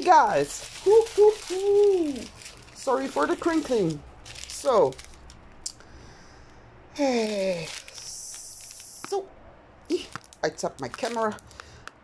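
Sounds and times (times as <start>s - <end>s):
plastic bag crinkling: 0.0s - 5.6s, 7.0s - 9.2s, 9.9s - 11.6s
low room hum: 0.0s - 11.8s.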